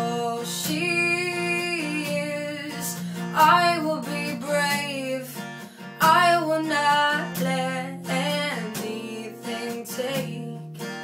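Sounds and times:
acoustic guitar strumming: 0:00.0 - 0:11.0
woman singing: 0:00.0 - 0:11.0.

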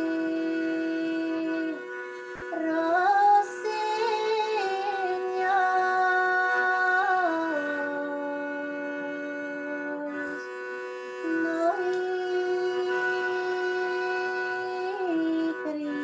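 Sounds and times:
woman singing: 0:00.0 - 0:10.5, 0:11.2 - 0:16.0
bowed string instrument melody: 0:00.0 - 0:16.0.

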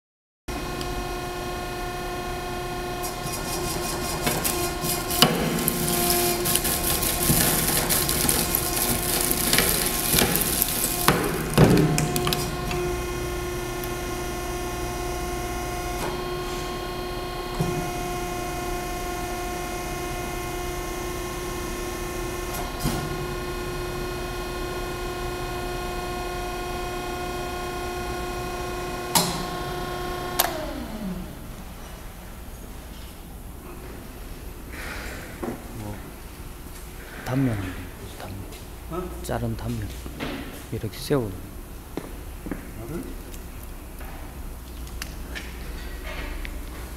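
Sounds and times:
hydraulic pump motor whine: 0:00.5 - 0:32.4
blade crunching and cracking metal: 0:03.2 - 0:12.8.

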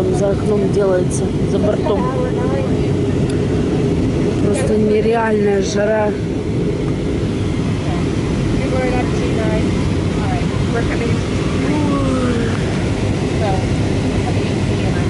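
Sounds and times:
airliner engines in flight: 0:00.0 - 0:15.0
rushing air: 0:00.0 - 0:15.0
faint voices: 0:07.8 - 0:15.0.

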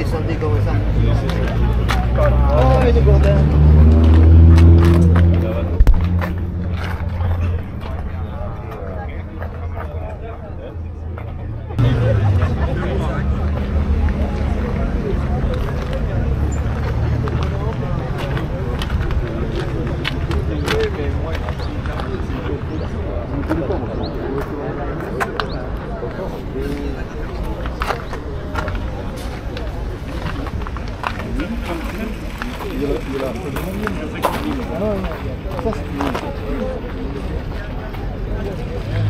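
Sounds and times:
people talking outdoors: 0:00.0 - 0:39.0.

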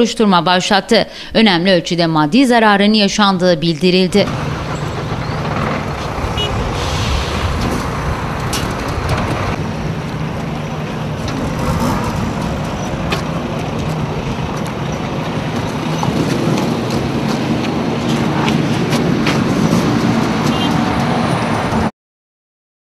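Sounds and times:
traffic engines humming: 0:03.0 - 0:21.9.

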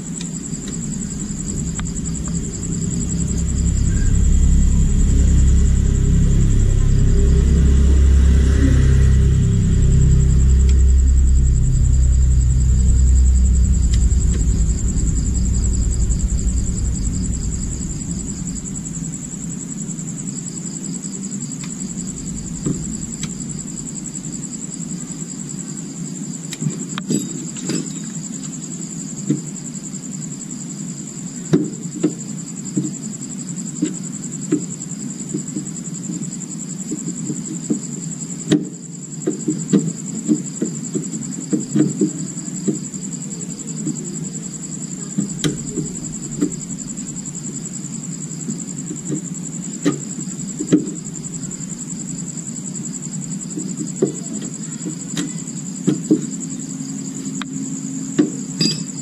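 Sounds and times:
low steady hum: 0:00.0 - 0:25.7, 0:44.3 - 0:54.0
crickets chirring: 0:00.0 - 0:59.0.

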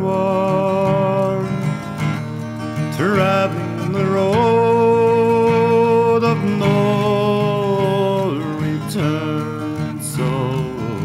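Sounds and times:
man singing: 0:00.0 - 0:11.0
strummed acoustic guitar: 0:00.0 - 0:11.0.

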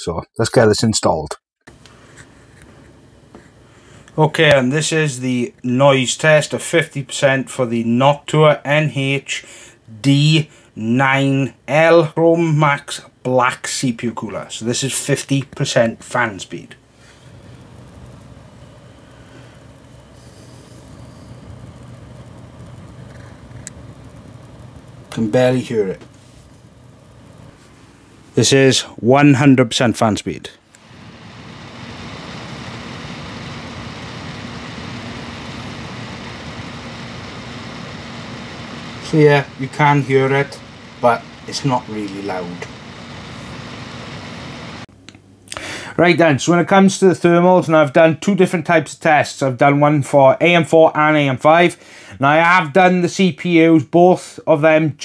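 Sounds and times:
computer fan whirring: 0:01.7 - 0:49.3.

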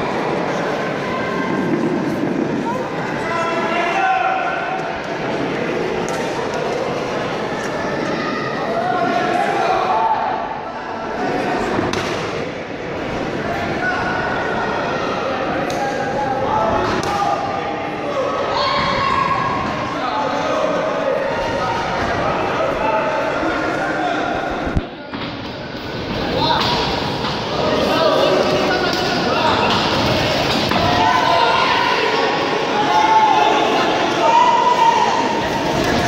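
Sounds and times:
crowd voices and shouts: 0:00.0 - 0:36.0
raised voices: 0:25.6 - 0:36.0.

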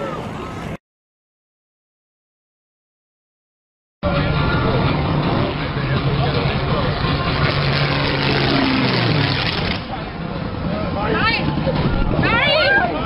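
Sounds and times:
spectators' voices: 0:04.0 - 0:13.0
aircraft engine: 0:04.1 - 0:12.2.

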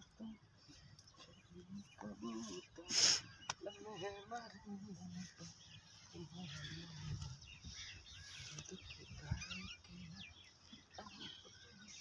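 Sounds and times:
birds chirping and whistling: 0:00.2 - 0:04.6, 0:05.2 - 0:12.0.

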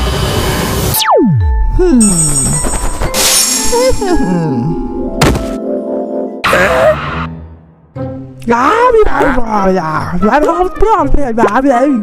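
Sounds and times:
wobbling vocal groan: 0:03.9 - 0:04.9
sharp thunk: 0:05.2 - 0:05.6.

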